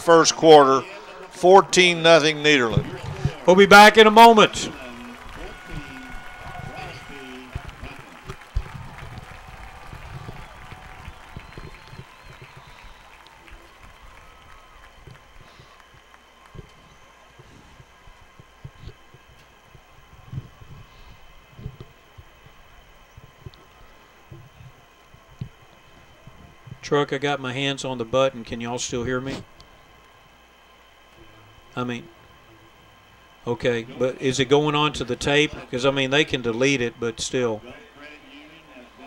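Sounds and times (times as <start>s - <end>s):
faint crowd noise: 0.0s - 29.9s
distant voices: 0.0s - 39.0s.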